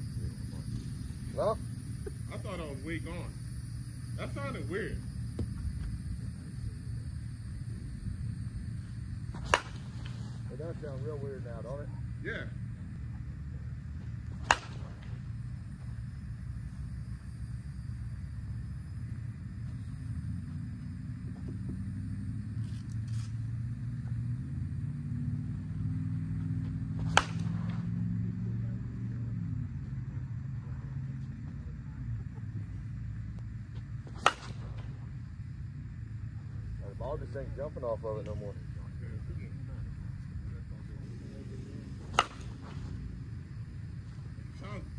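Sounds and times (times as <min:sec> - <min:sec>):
low steady rumble: 0:00.0 - 0:44.9
softball bat cracking on ball: 0:09.3 - 0:10.2, 0:14.2 - 0:15.2, 0:26.7 - 0:28.0, 0:33.8 - 0:35.0, 0:42.0 - 0:43.0.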